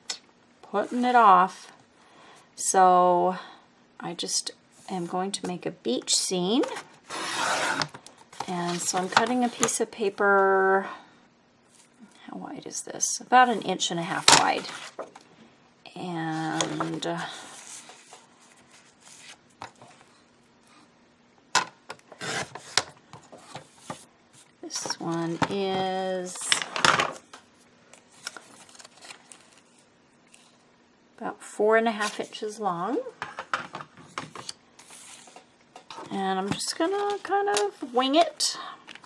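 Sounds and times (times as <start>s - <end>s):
paper rustle: 28.1s - 30.6s.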